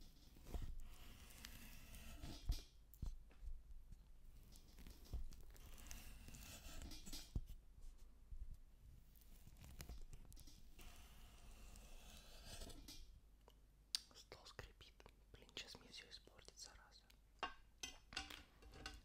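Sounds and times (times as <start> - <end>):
knife on wooden cutting board: 0.4 - 2.6, 5.5 - 7.4, 10.8 - 12.9.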